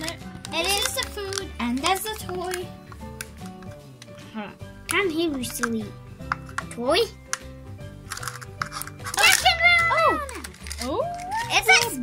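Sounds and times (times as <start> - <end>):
plastic capsule clicking open: 0.0 - 4.2, 4.8 - 11.9
background music: 0.0 - 12.0.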